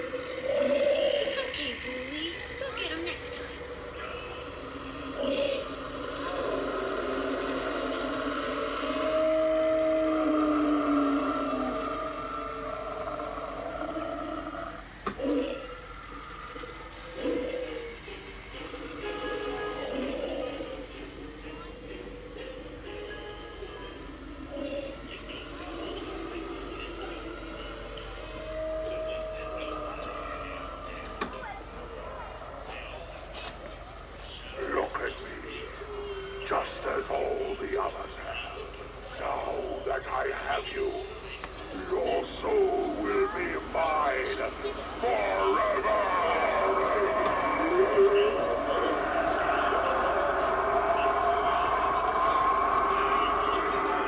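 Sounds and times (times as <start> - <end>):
held rising tone: 0.0 - 22.3, 23.8 - 33.8, 41.0 - 54.0
indistinct voices: 0.0 - 54.0
spooky music: 0.0 - 54.0.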